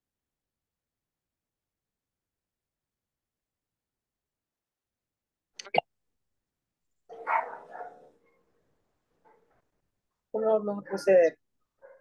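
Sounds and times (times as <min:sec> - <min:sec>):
dog barking: 0:07.1 - 0:08.5, 0:11.8 - 0:12.0.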